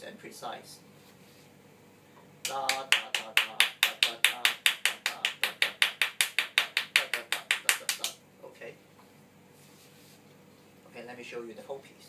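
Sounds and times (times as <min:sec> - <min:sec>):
hand clapping: 0:02.4 - 0:08.2.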